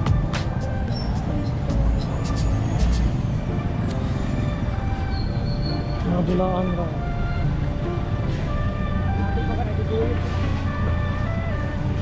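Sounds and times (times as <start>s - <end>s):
music playing: 0.0s - 12.0s
traffic rumble: 0.0s - 12.0s.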